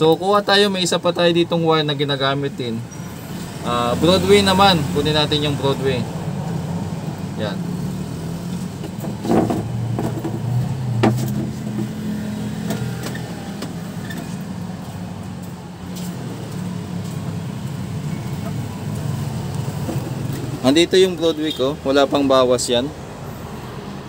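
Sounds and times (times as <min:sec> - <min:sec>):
vehicle engine humming: 0:02.4 - 0:23.7.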